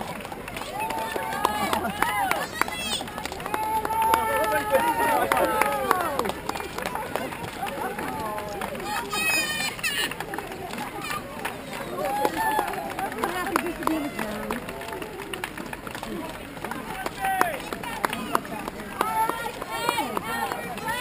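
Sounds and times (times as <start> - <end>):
runners' footsteps on asphalt: 0.0 - 21.0
spectators calling out and talking: 0.0 - 21.0.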